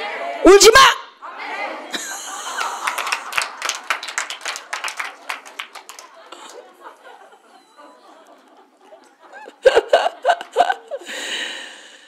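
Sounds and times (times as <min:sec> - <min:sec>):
hands clapping: 0:02.4 - 0:07.1.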